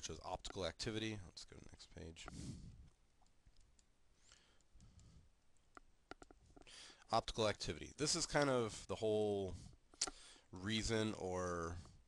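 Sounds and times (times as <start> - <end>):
stylus tapping on tablet screen: 5.6 - 6.7.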